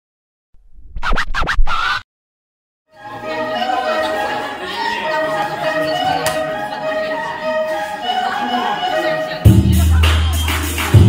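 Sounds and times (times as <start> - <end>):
record scratching: 0.8 - 2.0.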